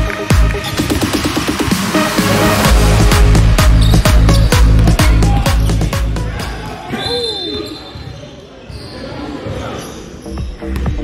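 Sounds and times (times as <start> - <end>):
dance music: 0.0 - 6.8, 10.3 - 11.0
sneaker squeaks: 3.6 - 11.0
players' voices: 3.8 - 11.0
referee whistle blast: 7.0 - 7.9.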